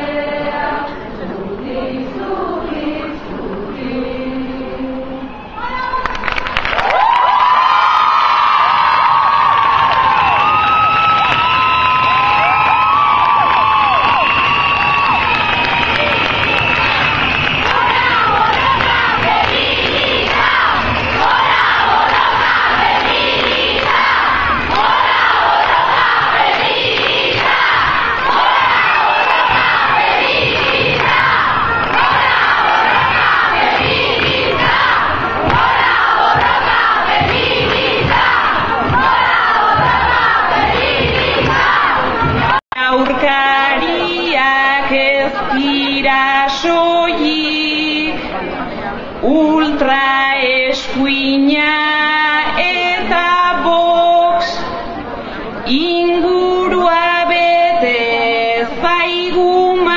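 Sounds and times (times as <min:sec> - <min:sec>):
crowd cheering and shouting: 0:06.7 - 0:42.7.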